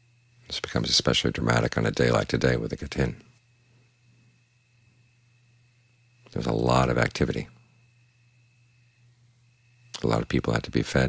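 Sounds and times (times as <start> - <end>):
man speaking: 0.5 - 3.2, 6.3 - 7.6, 10.0 - 11.0.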